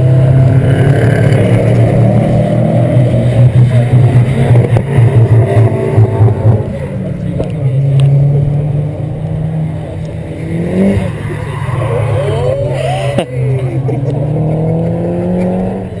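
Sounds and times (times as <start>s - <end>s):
race car engines revving: 0.0s - 16.0s.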